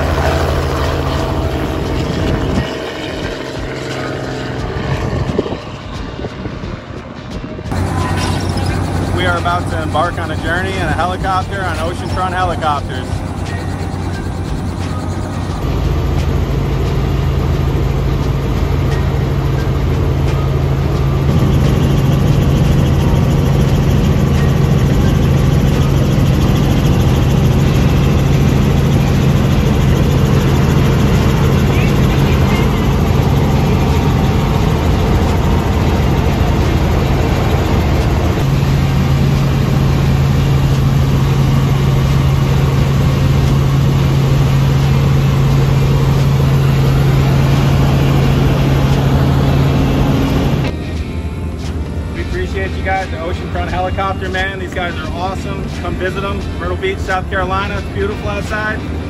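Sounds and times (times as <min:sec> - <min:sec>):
helicopter engine and rotor drone: 0:00.0 - 0:59.0.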